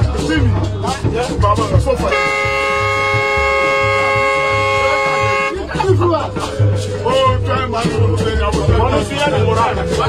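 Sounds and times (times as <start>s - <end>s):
music with pulsing bass beat: 0.0s - 10.0s
horn long blast: 2.1s - 5.7s.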